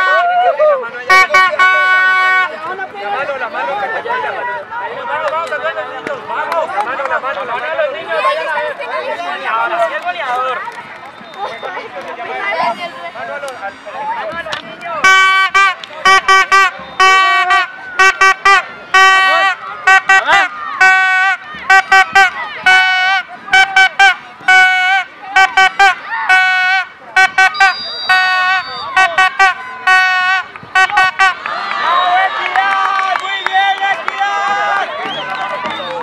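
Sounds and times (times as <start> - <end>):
horn tooting: 1.0 - 2.7, 15.0 - 31.5
children shouting: 18.6 - 26.8.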